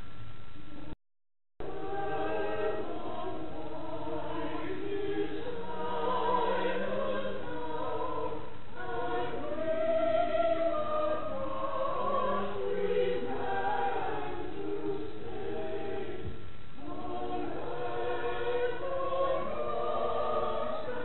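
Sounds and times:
group of singers singing: 1.6s - 21.0s.

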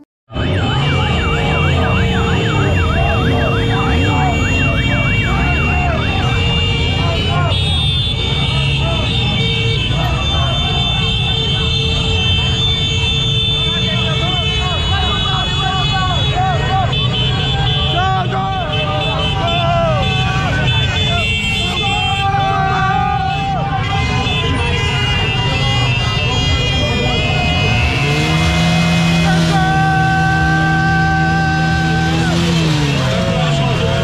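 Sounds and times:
motorcycle engines running: 0.3s - 34.0s
riders shouting: 0.4s - 34.0s.

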